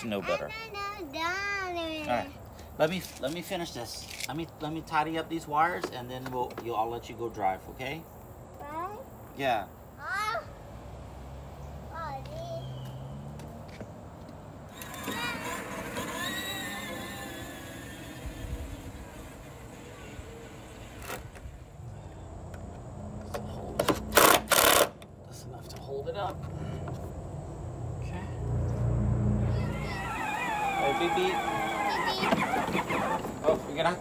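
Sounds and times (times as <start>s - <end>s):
child calling out: 8.6s - 9.1s, 10.0s - 10.6s, 14.8s - 17.1s, 29.4s - 33.2s
cordless drill bursts: 14.7s - 21.3s, 24.1s - 24.9s.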